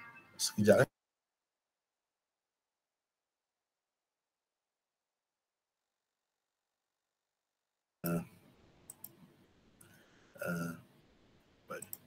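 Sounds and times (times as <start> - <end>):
computer mouse clicks: 8.8 - 10.0, 11.7 - 12.0.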